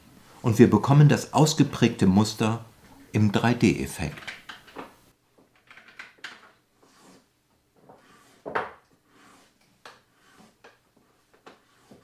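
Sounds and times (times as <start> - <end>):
small objects clicking on wooden table: 4.1 - 6.6.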